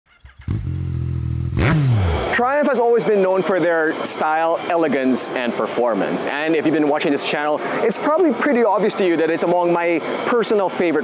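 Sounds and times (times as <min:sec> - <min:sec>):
motorcycle engine idling and revving: 0:00.1 - 0:02.4.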